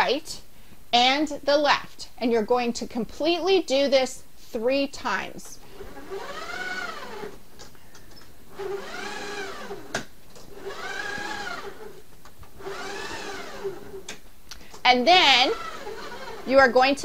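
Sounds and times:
stepper motor whining: 5.7 - 7.4, 8.5 - 12.0, 12.6 - 14.2, 15.4 - 16.5.

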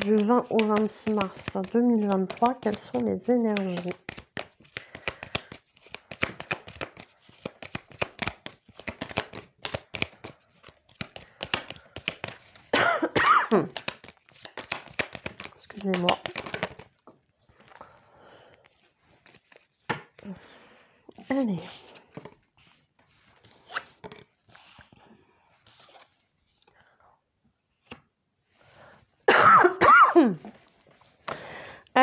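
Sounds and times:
person's voice: 0.0 - 4.0, 21.2 - 21.8
cards being shuffled by hand: 0.0 - 12.7, 13.6 - 20.4, 21.1 - 26.8.

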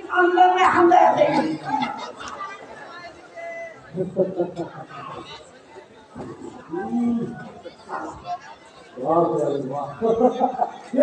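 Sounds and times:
voices speaking over one another: 0.0 - 11.0.

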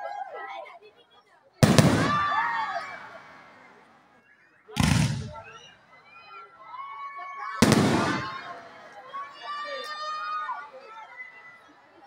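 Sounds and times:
firework shell bursting bang: 4.8 - 5.5.

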